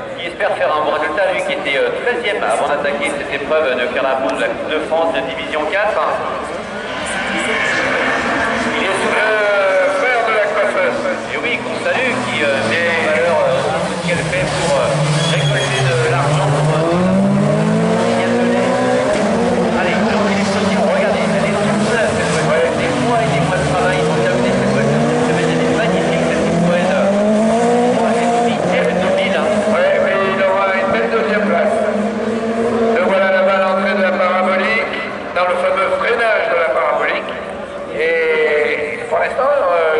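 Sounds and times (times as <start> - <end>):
racing car engines revving: 0.0 - 39.9.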